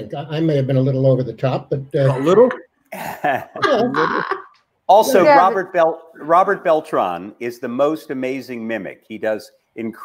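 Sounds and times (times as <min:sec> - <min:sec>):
person saying yeah: 0:02.0 - 0:02.6, 0:03.5 - 0:05.8
people laughing: 0:02.0 - 0:04.5, 0:05.1 - 0:05.7.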